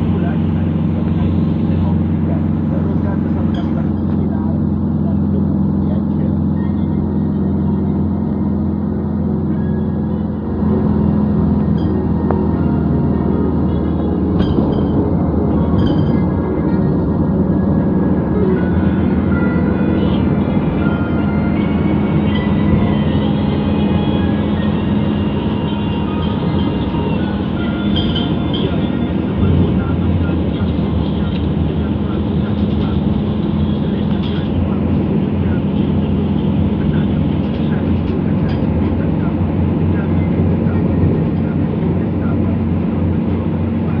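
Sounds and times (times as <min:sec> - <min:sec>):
car road and engine noise: 0:00.0 - 0:44.0.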